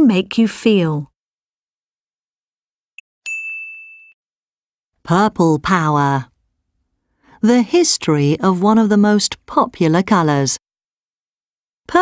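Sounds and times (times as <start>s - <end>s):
bright electronic ding: 3.3s - 4.2s.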